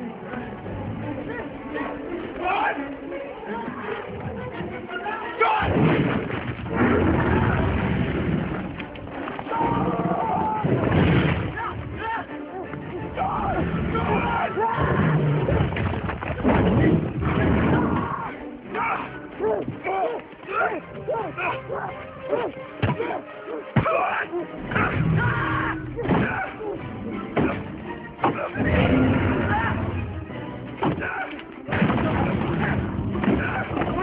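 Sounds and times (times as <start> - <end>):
action film music: 0.0 - 34.0
booming rumbles: 5.6 - 8.8, 10.6 - 11.9.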